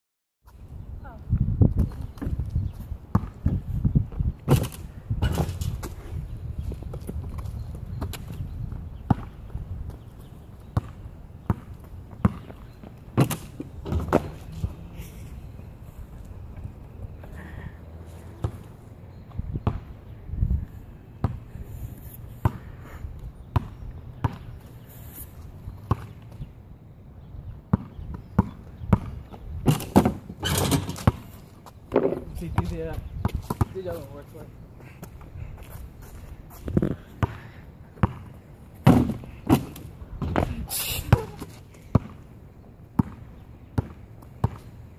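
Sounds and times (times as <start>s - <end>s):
basketball bouncing on asphalt: 1.4s - 14.8s, 18.3s - 20.1s, 21.1s - 21.5s, 22.4s - 22.8s, 23.4s - 24.6s, 25.7s - 26.5s, 27.3s - 34.2s, 34.8s - 44.9s.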